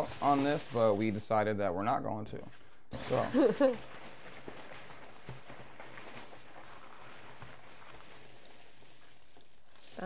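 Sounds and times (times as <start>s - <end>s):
packing material rustling: 0.0s - 1.3s, 2.9s - 10.0s.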